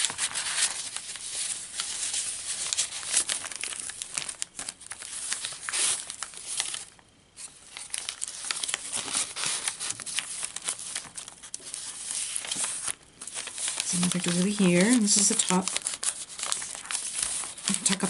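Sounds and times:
paper rustling and crinkling: 0.0s - 18.0s.

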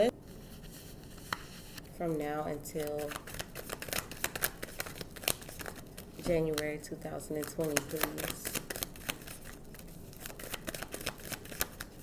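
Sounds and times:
cards being shuffled: 2.6s - 12.0s.

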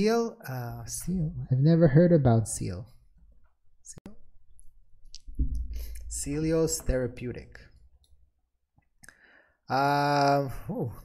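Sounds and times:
man talking: 0.0s - 3.0s, 6.0s - 7.8s, 9.7s - 11.0s.

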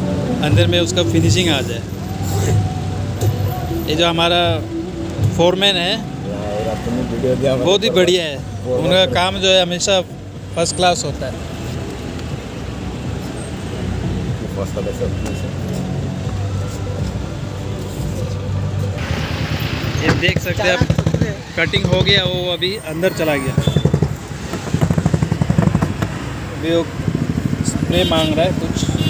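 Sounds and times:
low rumble of street noise: 0.0s - 29.0s
vehicle engine running: 23.4s - 29.0s.

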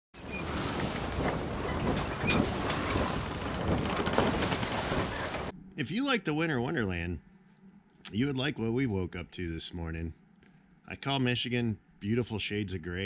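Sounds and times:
rushing water: 0.2s - 5.5s
wind buffeting microphone: 0.2s - 5.5s.

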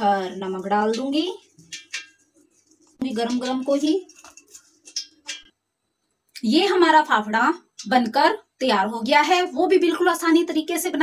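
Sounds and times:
chillies tapping on steel plate: 0.0s - 5.6s, 6.4s - 8.3s.

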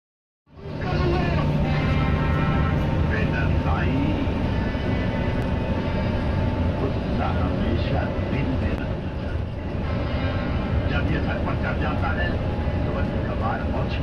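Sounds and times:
bus engine droning: 0.5s - 14.0s
indistinct voices: 0.6s - 14.0s.

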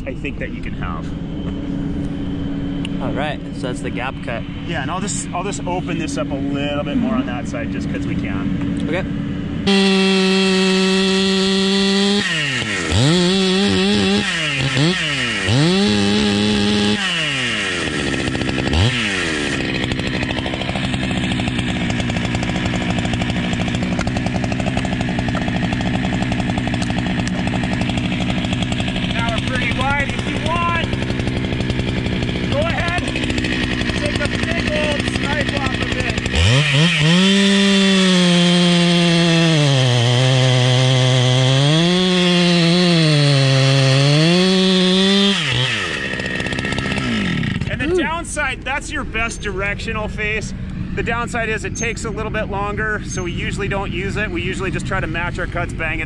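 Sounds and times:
chainsaw sawing wood: 0.8s - 51.3s.

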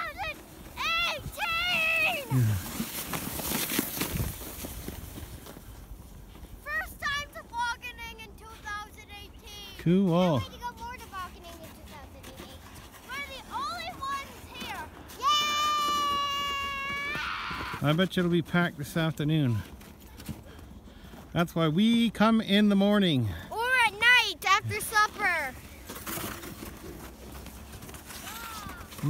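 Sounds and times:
child's high-pitched yell: 0.0s - 2.3s, 14.6s - 17.8s, 28.2s - 28.9s.

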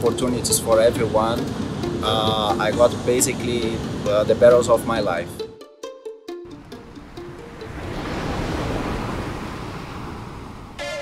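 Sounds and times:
ocean wave breaking: 0.0s - 5.5s, 6.4s - 11.0s
music: 0.0s - 8.2s.

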